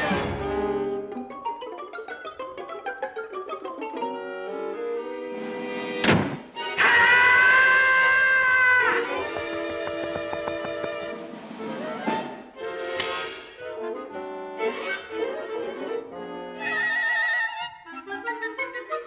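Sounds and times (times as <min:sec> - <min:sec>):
orchestral cartoon music: 0:00.0 - 0:08.0, 0:08.6 - 0:19.0.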